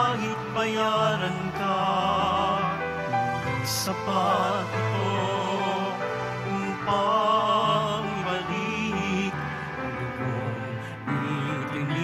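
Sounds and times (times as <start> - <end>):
low sustained accompaniment chords: 0.0 - 12.0
person singing hymn with vibrato: 0.0 - 12.0.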